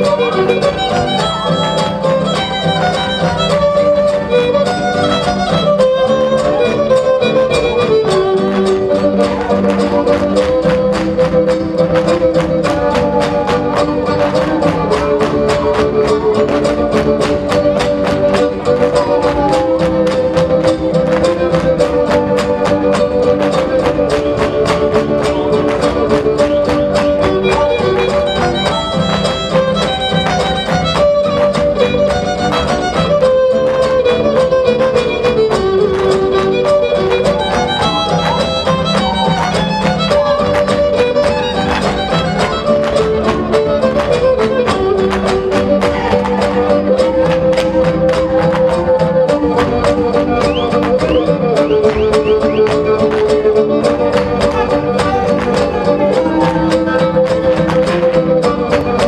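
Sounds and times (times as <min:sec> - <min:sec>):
fast clicking rhythm: 0:00.0 - 0:59.0
violin melody: 0:00.0 - 0:59.0.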